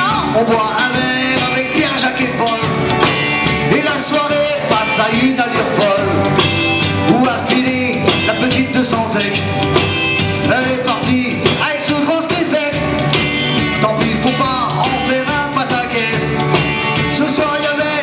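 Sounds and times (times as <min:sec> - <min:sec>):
man singing: 0:00.0 - 0:09.6, 0:10.4 - 0:18.0
drum kit: 0:00.0 - 0:18.0
electric bass: 0:00.0 - 0:18.0
electric guitar: 0:00.0 - 0:18.0
keyboards: 0:00.0 - 0:18.0.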